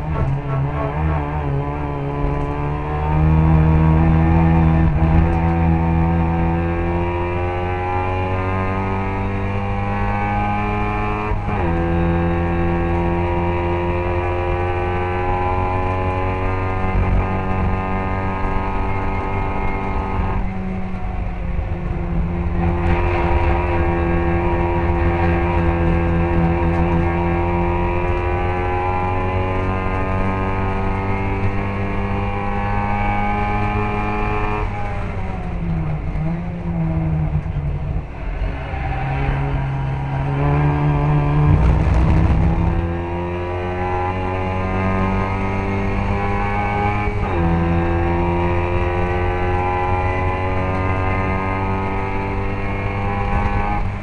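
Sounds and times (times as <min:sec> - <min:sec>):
race car engine revving: 0:00.0 - 0:54.0.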